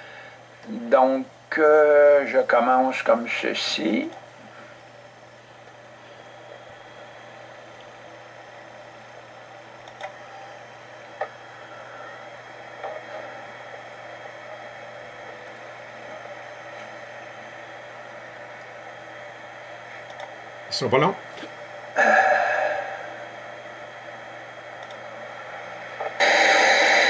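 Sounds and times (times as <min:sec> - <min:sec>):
low hiss and hum: 0:00.0 - 0:27.0
faint clicks: 0:20.0 - 0:20.4, 0:24.8 - 0:25.0.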